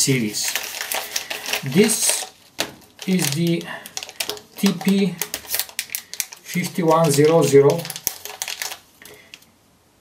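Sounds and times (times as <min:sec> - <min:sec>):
metallic bag crinkling: 0:00.0 - 0:09.4.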